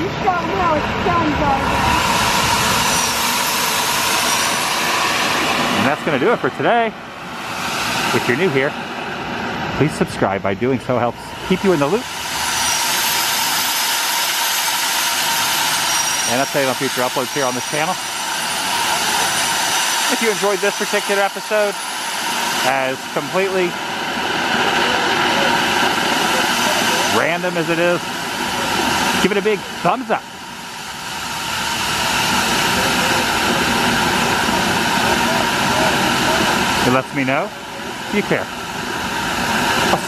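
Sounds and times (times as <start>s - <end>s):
hiss of spraying water: 11.5s - 37.3s.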